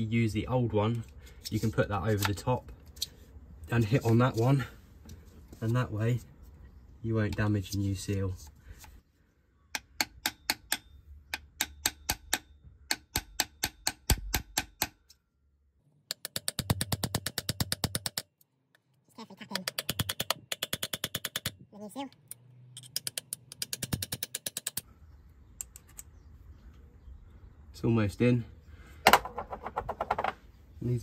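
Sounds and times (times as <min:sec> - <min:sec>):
hammer tapping on metal: 0:09.8 - 0:15.0.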